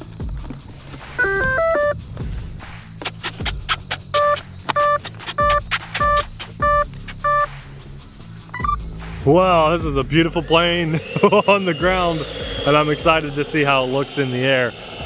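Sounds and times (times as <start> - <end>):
electronic beep tones: 1.2 - 2.0, 4.2 - 7.5, 8.5 - 8.8
short even beeps: 4.2 - 7.5, 8.6 - 8.8.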